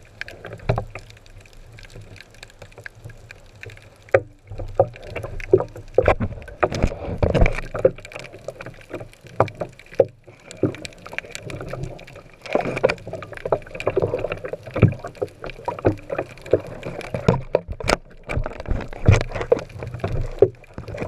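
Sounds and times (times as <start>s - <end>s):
muffled underwater water rushing: 0.0s - 21.0s.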